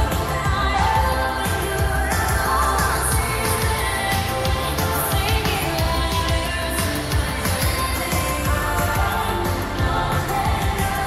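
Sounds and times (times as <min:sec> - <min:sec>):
pop song with sung vocals: 0:00.0 - 0:11.0.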